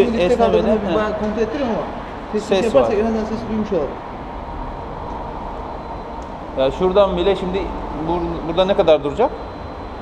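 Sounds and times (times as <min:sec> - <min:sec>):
faint steady whine: 0:00.0 - 0:10.0
workshop rumble and hiss: 0:00.0 - 0:10.0.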